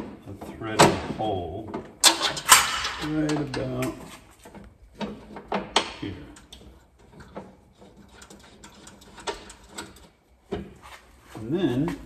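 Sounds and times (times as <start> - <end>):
metal hardware clicking and knocking: 1.7 - 3.9, 4.5 - 10.7.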